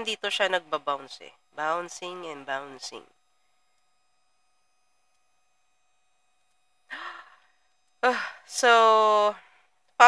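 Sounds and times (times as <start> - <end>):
woman sighing: 6.9 - 7.4.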